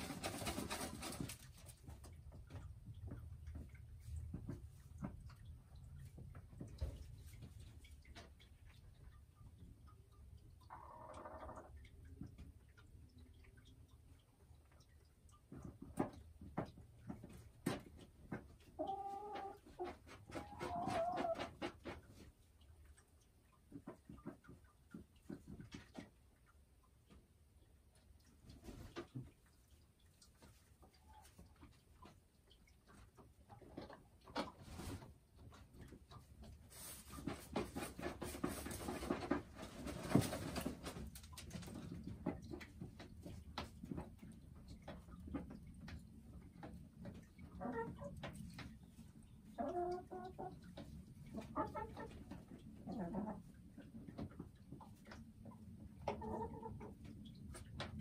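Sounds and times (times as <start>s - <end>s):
hen clucking: 9.9s - 12.4s, 18.3s - 22.2s, 47.1s - 55.2s, 55.9s - 57.7s.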